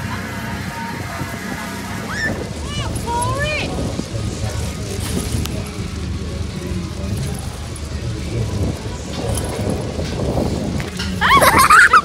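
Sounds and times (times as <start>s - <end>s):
faint voices: 0.0s - 12.0s
low uneven rumble: 0.0s - 12.0s.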